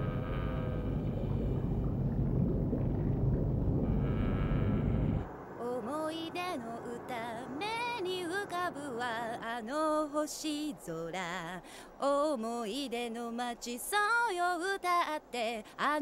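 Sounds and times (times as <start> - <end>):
low rumbling horror drone: 0.0 - 10.3
woman singing with vibrato: 5.6 - 16.0.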